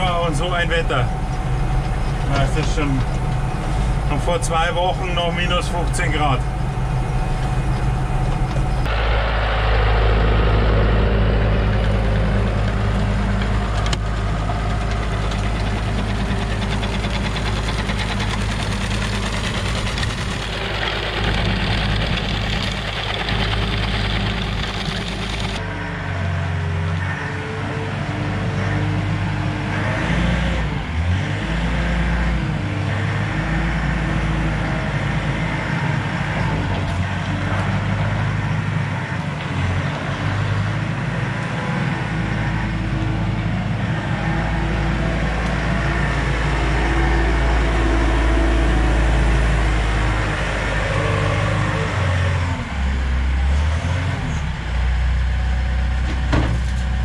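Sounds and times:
diesel machinery engine revving: 0.0s - 57.0s
tractor diesel engine running: 0.0s - 57.0s.

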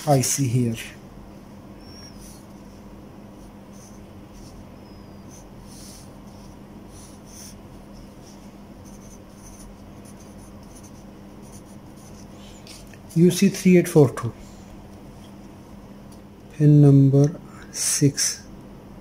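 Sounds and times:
steady low hum: 0.0s - 19.0s
pencil writing on paper: 3.4s - 12.3s.

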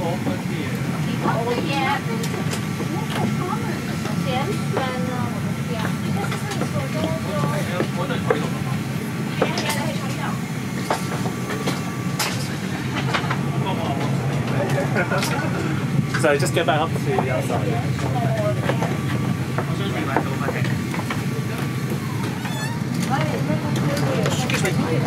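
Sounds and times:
aircraft cabin ventilation hum: 0.0s - 25.0s.

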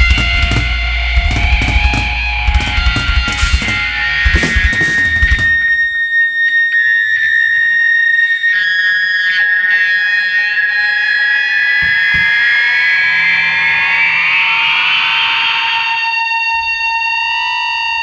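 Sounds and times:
low thumps: 0.0s - 6.0s
electric guitar feedback: 0.0s - 16.4s.

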